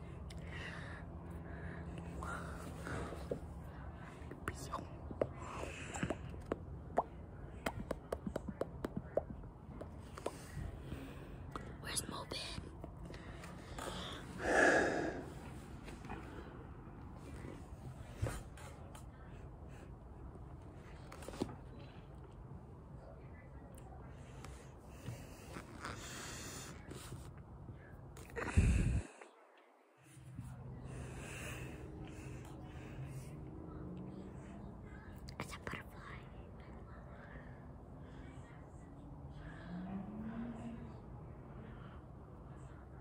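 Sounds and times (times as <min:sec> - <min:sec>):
soft whispering: 0:00.0 - 0:22.1, 0:22.8 - 0:43.0.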